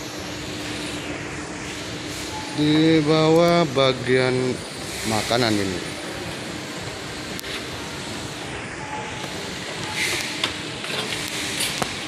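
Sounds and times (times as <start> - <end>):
ventilation rush in a mall: 0.0 - 12.0.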